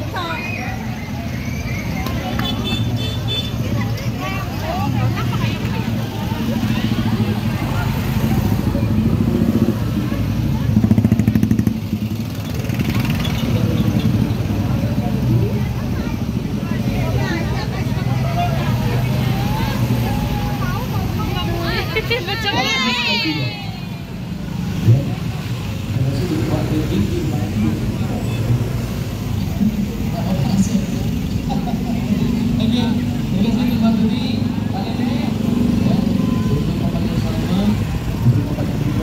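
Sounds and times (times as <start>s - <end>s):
people talking: 0.0s - 11.2s, 13.0s - 24.0s
motorcycles: 0.0s - 39.0s.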